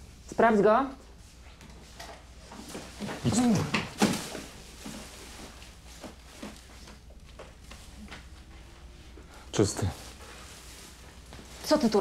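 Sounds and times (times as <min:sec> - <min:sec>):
low room hum: 0:00.0 - 0:12.0
clothing rustling: 0:01.2 - 0:12.0.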